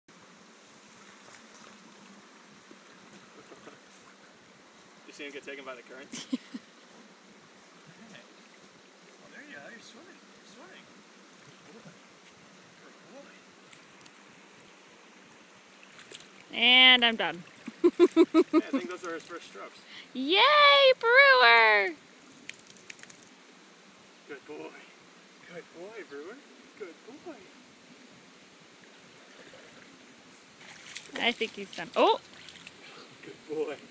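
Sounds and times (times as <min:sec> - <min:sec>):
outdoor background hiss: 0:00.1 - 0:33.9
shallow river flowing: 0:00.1 - 0:33.9.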